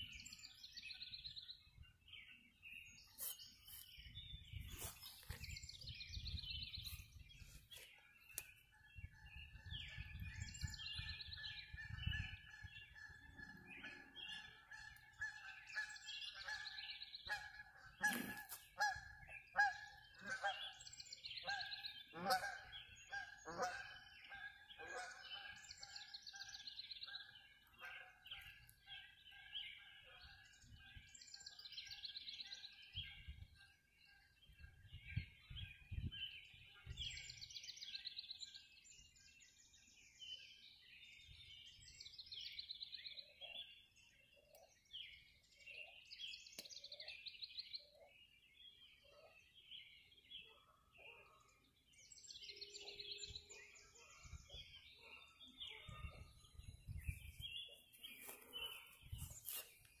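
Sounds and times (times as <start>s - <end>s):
birds calling and singing: 0.0s - 60.0s.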